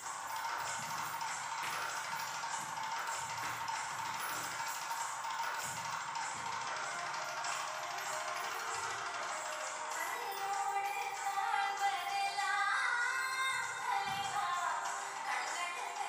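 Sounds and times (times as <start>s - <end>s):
dance music with regular beat: 0.0s - 16.0s.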